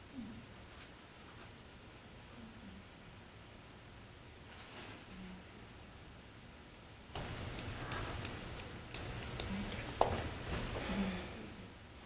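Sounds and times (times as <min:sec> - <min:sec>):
background noise: 0:00.0 - 0:12.0
light sharp clicks: 0:07.2 - 0:10.0.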